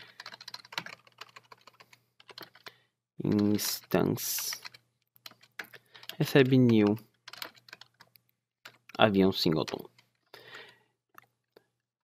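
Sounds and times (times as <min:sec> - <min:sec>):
typing on computer keyboard: 0:00.0 - 0:02.7, 0:03.3 - 0:10.8.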